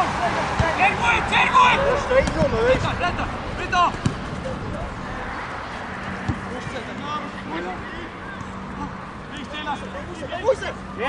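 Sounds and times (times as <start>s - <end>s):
players shouting: 0.0s - 10.8s
football kicked with thud: 3.9s - 4.3s.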